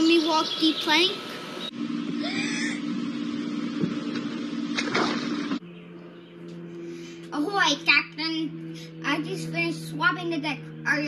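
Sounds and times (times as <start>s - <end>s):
child speaking: 0.0s - 1.3s, 7.3s - 11.0s
steady low hum: 0.0s - 11.0s.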